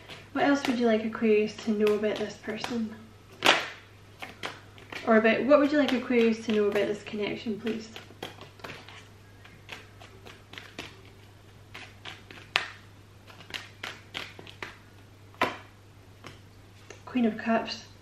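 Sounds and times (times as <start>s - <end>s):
cards being shuffled: 0.0s - 17.0s.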